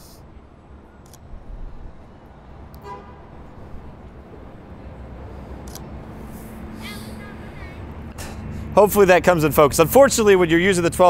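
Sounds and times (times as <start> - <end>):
street traffic noise: 0.0 - 11.0
car horn toot: 2.8 - 3.3.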